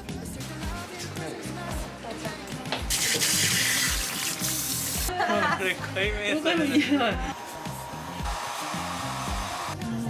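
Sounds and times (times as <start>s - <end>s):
background music with steady beat: 0.0s - 10.0s
hair dryer blowing: 7.2s - 10.0s.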